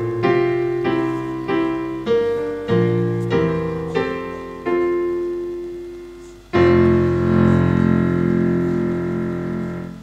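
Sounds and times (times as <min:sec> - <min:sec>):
keyboard playing a hymn chord: 0:00.0 - 0:10.0.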